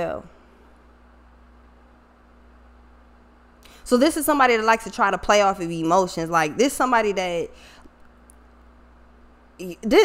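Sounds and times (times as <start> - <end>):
faint high hum: 0.0 - 10.0
steady low hum: 0.0 - 10.0.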